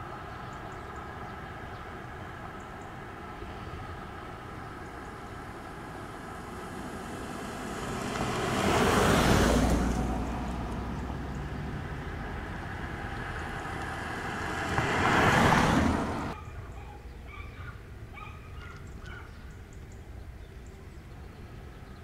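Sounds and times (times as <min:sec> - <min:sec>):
cars driving past on asphalt: 0:00.0 - 0:16.4.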